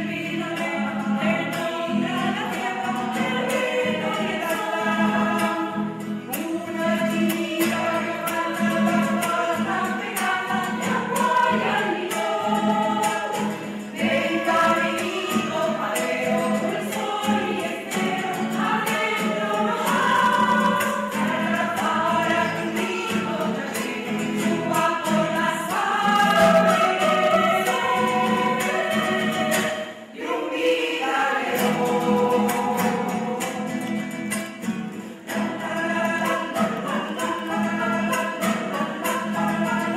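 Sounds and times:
choir singing: 0.0s - 39.9s.

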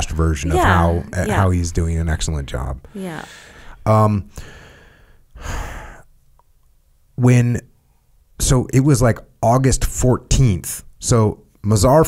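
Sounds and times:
person saying um: 0.5s - 1.6s, 3.0s - 3.4s
breath out: 3.2s - 6.1s.

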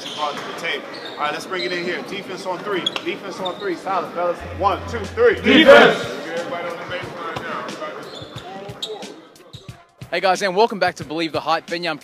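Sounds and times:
voices chatting: 4.4s - 6.2s.

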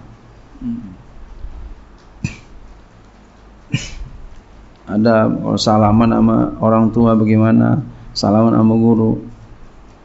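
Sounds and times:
faint low hum: 0.0s - 10.0s
man's voice: 4.9s - 9.3s.

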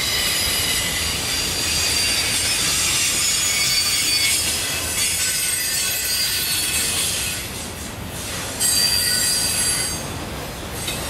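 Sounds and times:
steel wheels squealing: 0.0s - 7.6s, 8.2s - 10.1s
freight cars rumbling on rails: 0.0s - 11.0s.

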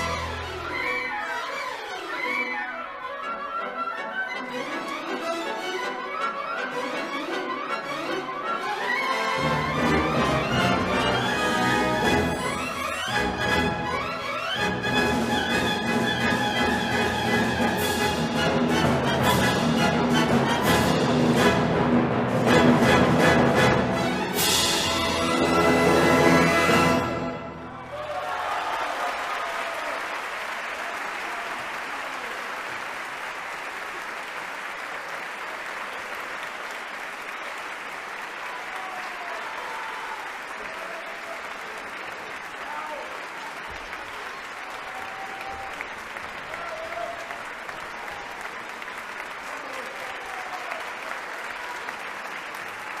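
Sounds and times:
audience applauding: 25.4s - 53.0s.

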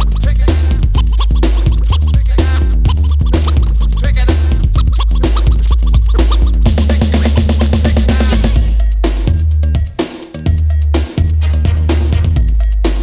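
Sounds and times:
drum machine beat: 0.0s - 13.0s
electro funk track: 0.0s - 13.0s
heavy bass line: 0.0s - 13.0s
turntable scratching: 0.0s - 13.0s.

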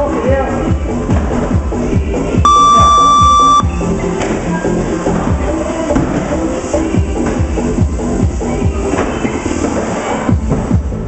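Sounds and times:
background music with steady beat: 0.0s - 11.0s
long electronic timer beep: 2.5s - 3.7s.

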